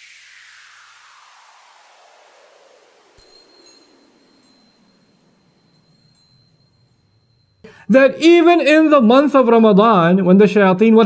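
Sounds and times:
shimmering chime tones: 3.2s - 7.8s
sparkling tinkles: 3.2s - 7.8s.

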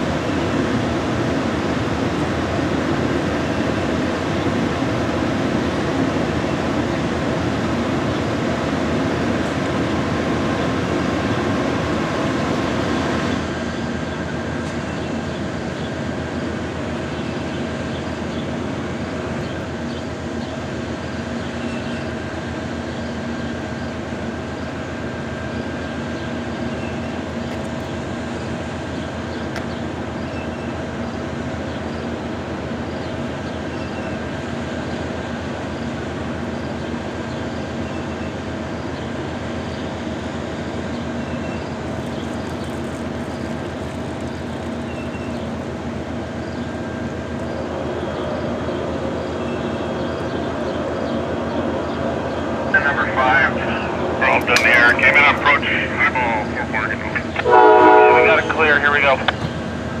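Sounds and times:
diesel locomotives idling: 0.0s - 60.0s
voices: 52.5s - 59.6s.

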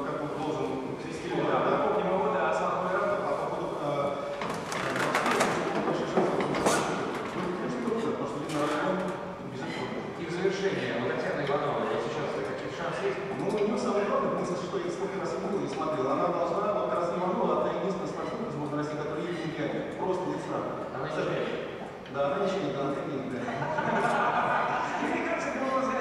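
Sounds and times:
man speaking: 0.0s - 4.3s, 7.4s - 23.9s, 24.6s - 26.0s.

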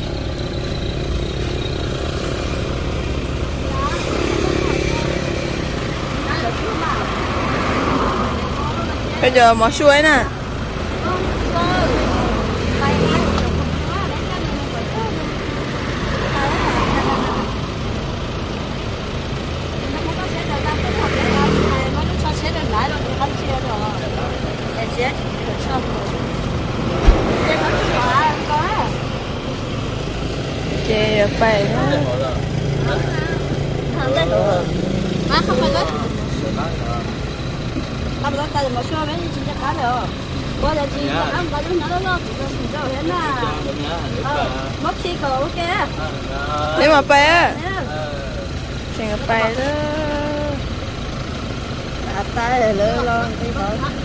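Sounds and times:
vehicle engine idling: 0.0s - 54.0s
sharp knock: 27.0s - 28.1s.

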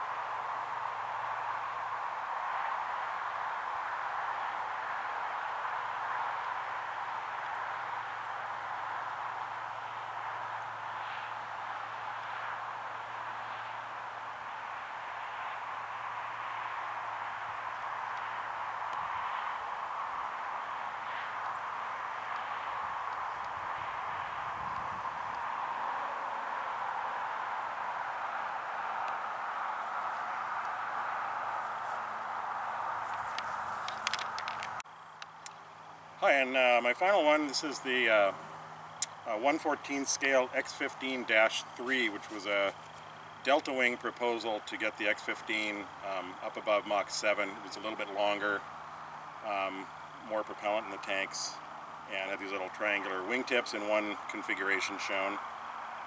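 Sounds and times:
steady outdoor hiss: 0.0s - 56.0s.

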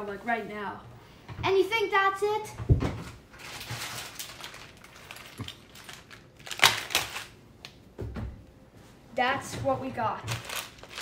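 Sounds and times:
crinkling rustle: 3.3s - 7.4s, 10.2s - 11.0s.

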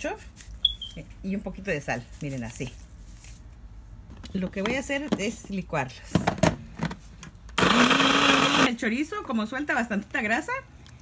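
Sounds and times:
blender motor whining: 7.6s - 8.7s.

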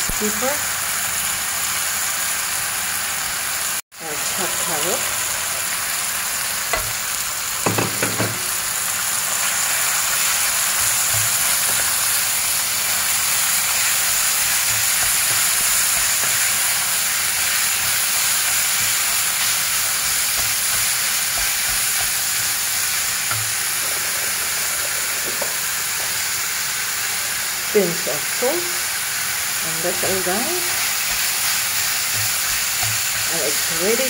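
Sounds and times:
meat sizzling in a frying pan: 0.0s - 34.0s.

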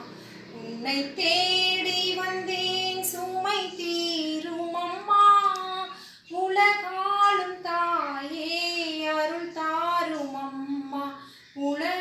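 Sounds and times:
woman singing unaccompanied hymn: 0.0s - 12.0s.

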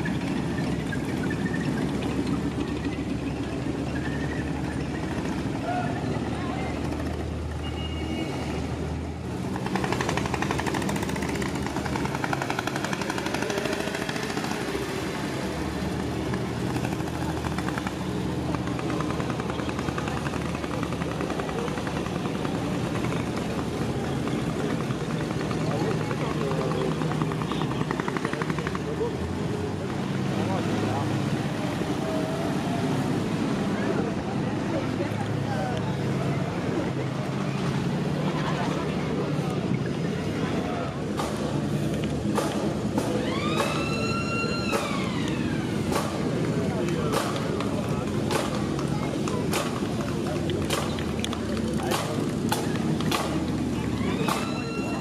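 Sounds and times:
crowd talking: 0.0s - 55.0s
motorcycles passing: 0.0s - 55.0s
tank engine passing: 0.0s - 55.0s.

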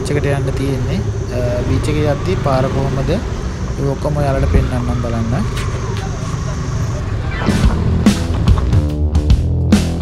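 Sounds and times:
voices: 0.0s - 7.9s
scooter engines idling: 0.0s - 9.0s.

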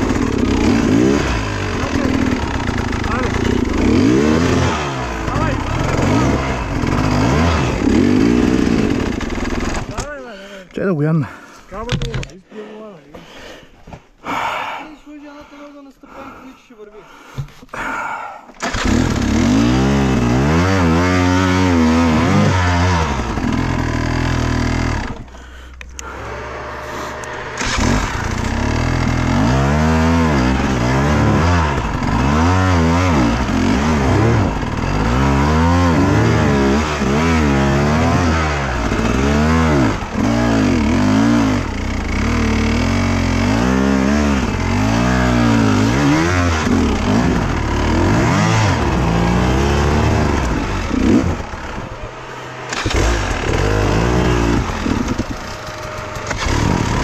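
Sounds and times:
dirt bike engine revving: 0.0s - 10.2s, 18.6s - 57.0s.

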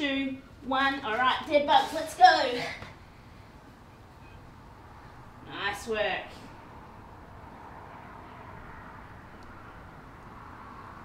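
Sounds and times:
outdoor ambience: 0.0s - 11.0s.

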